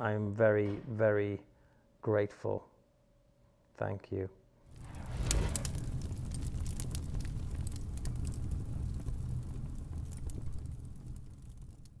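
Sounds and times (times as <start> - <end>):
fire crackles: 4.7 - 12.0
fire rumble: 4.7 - 12.0.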